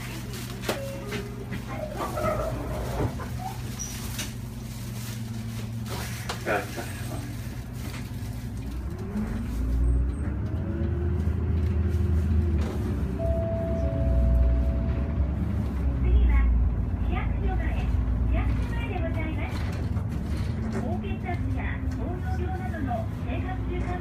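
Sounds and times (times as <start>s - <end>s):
bus engine rumble: 0.0s - 24.0s.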